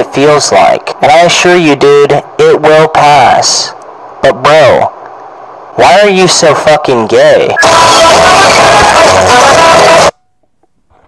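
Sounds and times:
loud distorted noise: 0:00.0 - 0:10.2.

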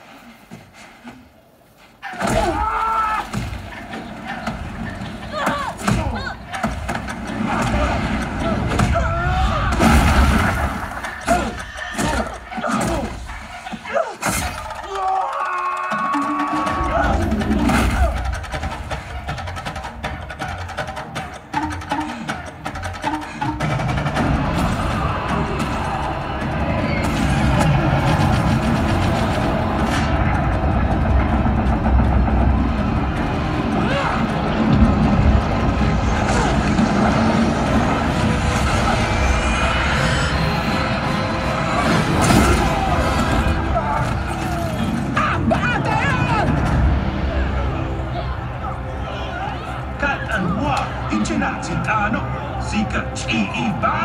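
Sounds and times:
film score music: 0:00.0 - 0:54.0
heavy low rumble: 0:23.8 - 0:53.2.

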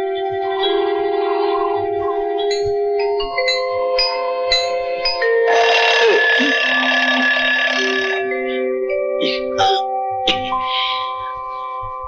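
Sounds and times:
light glockenspiel-like music: 0:00.0 - 0:12.0
alarm clock bell ringing: 0:02.4 - 0:09.8.

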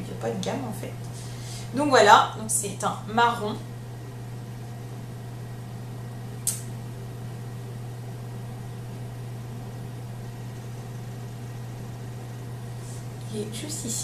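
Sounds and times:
low hum with faint hiss: 0:00.0 - 0:14.0
short click: 0:06.4 - 0:06.7.

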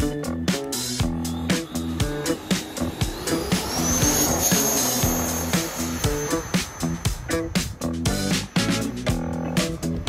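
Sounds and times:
funk music with steady beat: 0:00.0 - 0:10.0.

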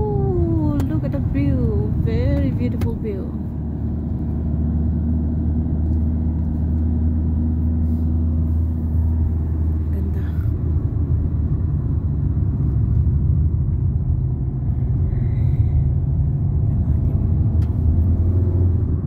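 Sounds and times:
car engine: 0:00.0 - 0:19.0
road rumble: 0:00.0 - 0:19.0.

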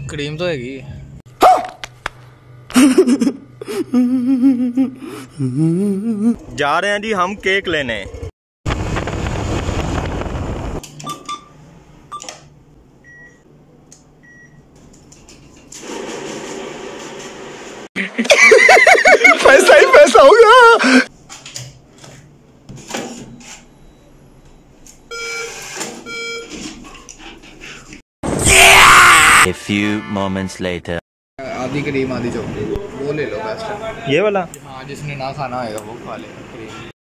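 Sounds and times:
machine beeps: 0:23.2 - 0:26.6.

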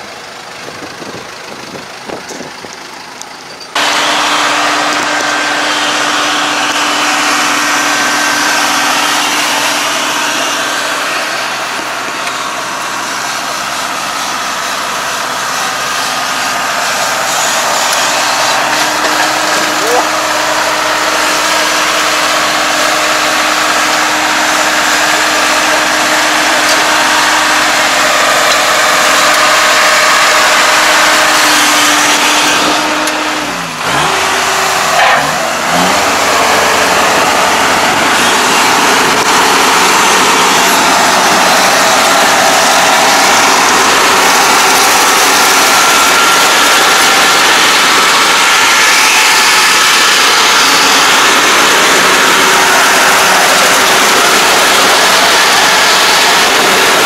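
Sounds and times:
combine harvester engine running: 0:00.0 - 0:57.0.

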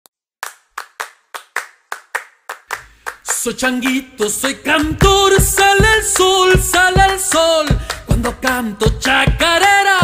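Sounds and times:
sharp hand claps: 0:00.4 - 0:04.5, 0:05.3 - 0:08.4.

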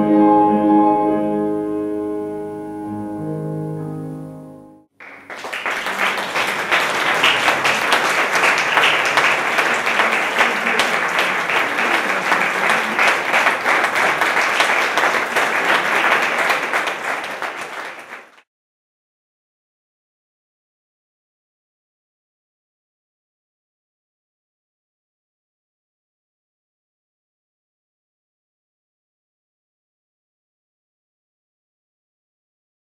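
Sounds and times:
grand piano chords: 0:00.0 - 0:04.9
audience applauding: 0:05.0 - 0:18.4.

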